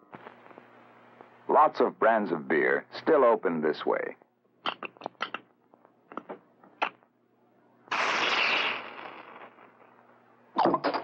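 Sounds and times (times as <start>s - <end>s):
carbonation hissing: 7.9s - 9.8s.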